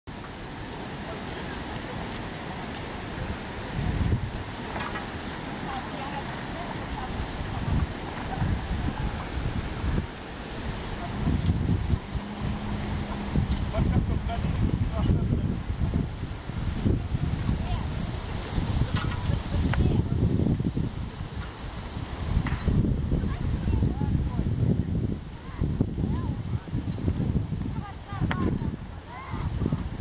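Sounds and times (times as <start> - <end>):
wind buffeting microphone: 0.1 - 30.0
faint voices: 0.2 - 20.4, 23.1 - 30.0.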